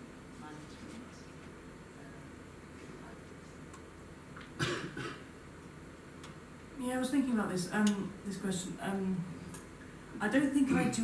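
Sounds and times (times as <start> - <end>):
person coughing: 4.6 - 5.3.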